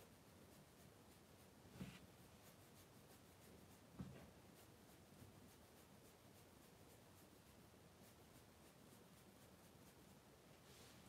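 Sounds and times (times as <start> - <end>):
brush pen strokes on paper: 0.0 - 11.0
soft hand rub: 0.0 - 11.0.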